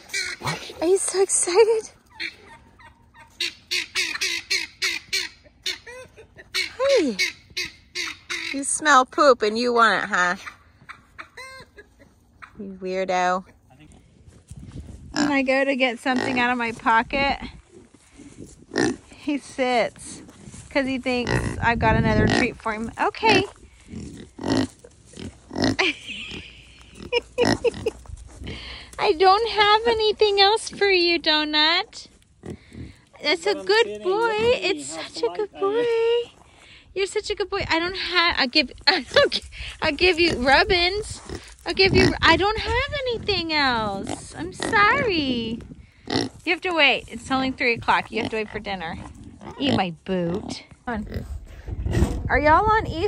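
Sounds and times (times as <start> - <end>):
pig grunting: 0.0 - 1.1, 23.2 - 27.9
farm fowl squawking: 2.0 - 8.6.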